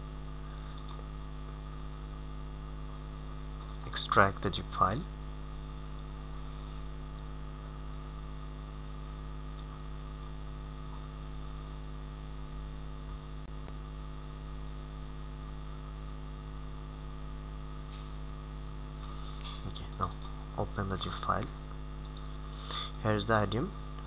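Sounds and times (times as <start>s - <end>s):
electrical mains hum: 0.0s - 24.0s.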